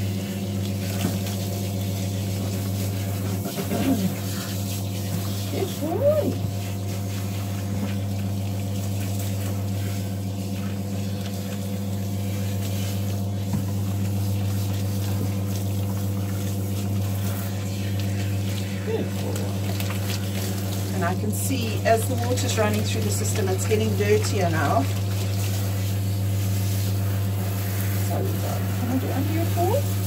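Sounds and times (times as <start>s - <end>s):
bath pump humming: 0.0s - 30.0s
water spraying from nozzle: 0.0s - 30.0s.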